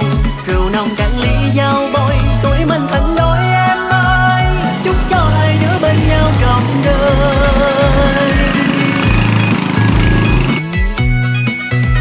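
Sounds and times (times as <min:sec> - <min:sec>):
instrumental pop love song: 0:00.0 - 0:12.0
plucked beat-driven music track: 0:00.0 - 0:12.0.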